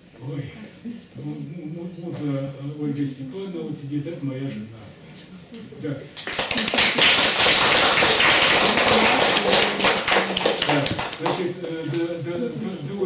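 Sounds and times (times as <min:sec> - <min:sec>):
audience applauding: 0:06.2 - 0:12.1.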